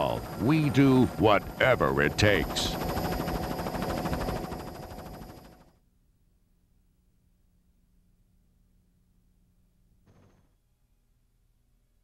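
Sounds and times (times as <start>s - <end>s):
helicopter rotor chop: 0.0s - 5.7s
high turbine whine: 0.0s - 5.7s.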